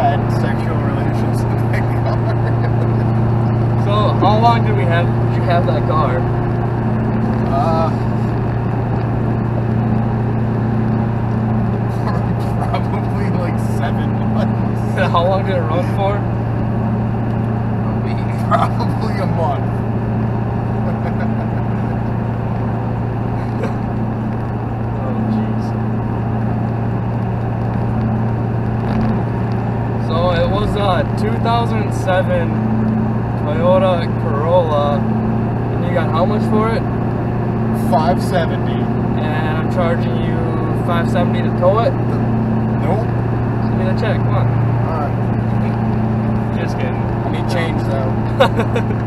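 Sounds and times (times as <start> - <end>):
pickup truck engine and road drone: 0.0 - 49.0.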